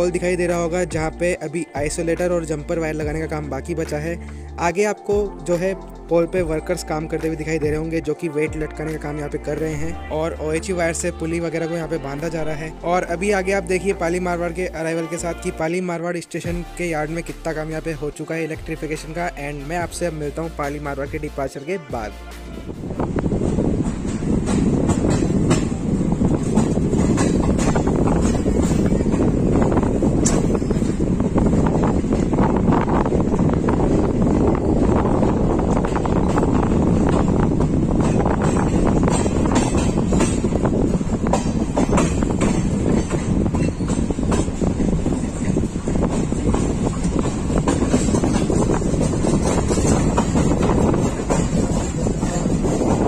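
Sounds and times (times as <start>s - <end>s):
train wheels rumbling on track: 0.0s - 15.7s, 22.0s - 53.0s
wind on microphone: 22.5s - 53.0s
wheel clicks over rail joints: 26.4s - 31.0s, 35.7s - 53.0s.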